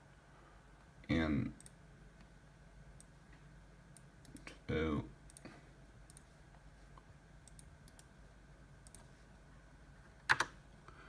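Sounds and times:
faint hum: 0.0s - 11.0s
sharp clicks: 7.4s - 8.1s.

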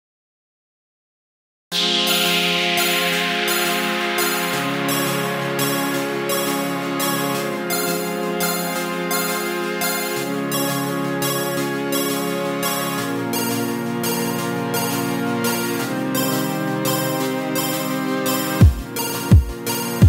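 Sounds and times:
pulsing high synth layer: 1.7s - 20.0s
synth chords: 1.7s - 20.0s
deep kick drum: 18.6s - 19.6s.

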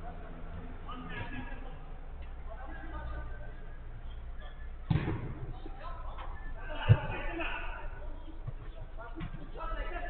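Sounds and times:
sharp thud: 4.9s - 5.4s.

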